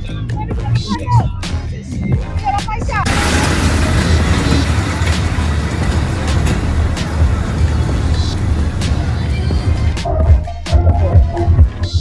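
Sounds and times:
music playing: 0.0 - 12.0
low rumble: 3.1 - 10.1.

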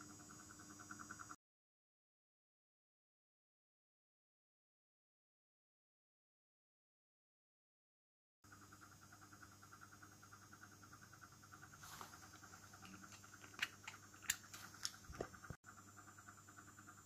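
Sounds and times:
faint steady hum: 0.0 - 1.4, 8.5 - 17.0.

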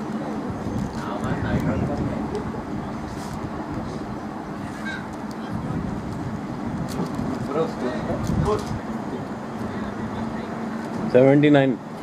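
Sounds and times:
low outdoor rumble: 0.0 - 12.0
distant players calling: 4.1 - 6.0.

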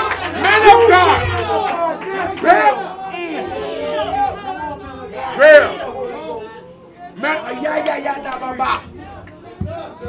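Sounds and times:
congregation calling out: 0.0 - 10.0.

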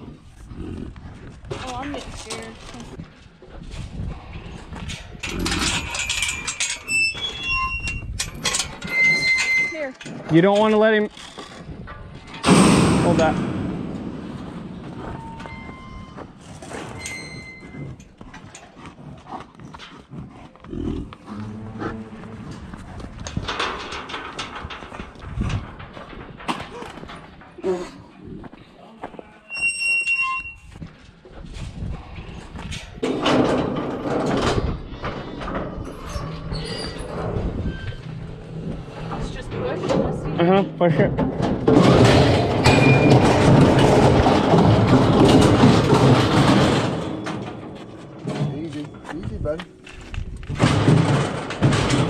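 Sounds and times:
steel gates clanking and rattling: 4.8 - 18.7, 22.2 - 27.6, 33.0 - 52.0
short metallic squeal: 6.8 - 8.1, 8.8 - 9.9, 29.5 - 30.7.

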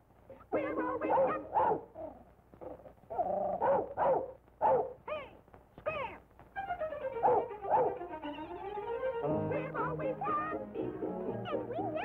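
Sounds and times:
person imitating dog barks: 0.3 - 2.3, 7.2 - 8.0.

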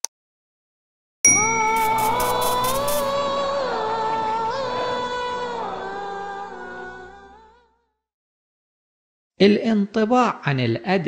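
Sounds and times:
bright bell-like ding: 1.3 - 2.4
quick high percussive ticks: 1.4 - 3.2.

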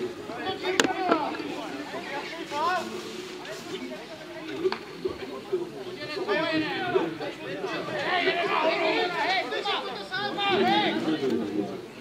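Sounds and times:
distant players calling: 0.0 - 12.0.

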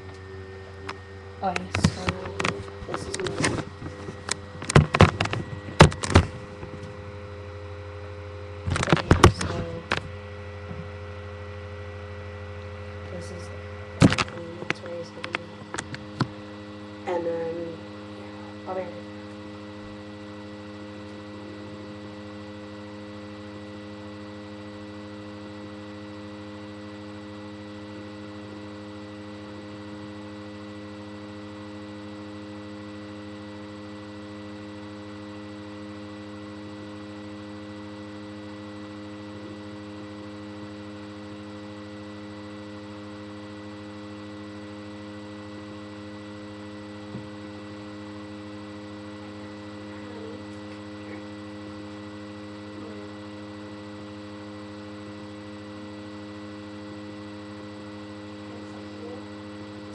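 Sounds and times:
electrical hum: 0.0 - 59.9.

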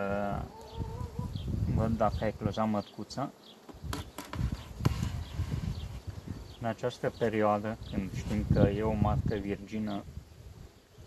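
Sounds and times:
wooden frames knocking and scraping: 3.6 - 6.1.

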